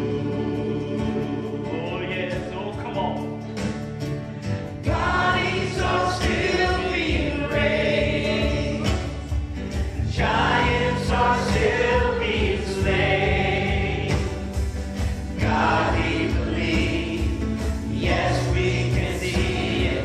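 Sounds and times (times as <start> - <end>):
singers singing together: 0.0 - 2.8, 4.7 - 20.0
band playing keyboard guitars and beat: 0.0 - 20.0.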